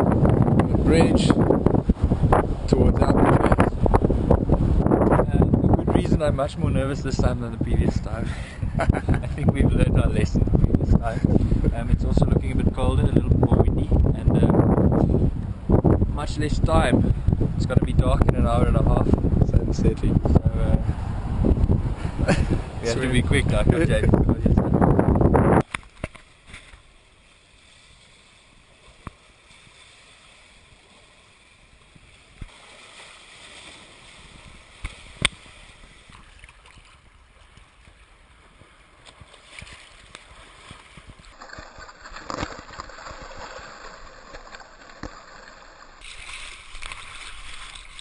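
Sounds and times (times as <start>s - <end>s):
water lapping and sloshing: 25.6s - 48.0s.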